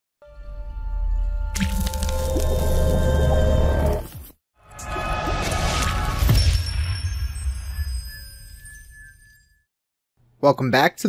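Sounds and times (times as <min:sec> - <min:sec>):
wet splattering sound effect: 0:01.6 - 0:03.0.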